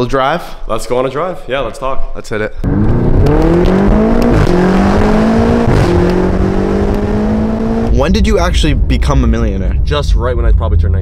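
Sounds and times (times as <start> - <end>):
car engine accelerating hard: 2.6 - 8.1.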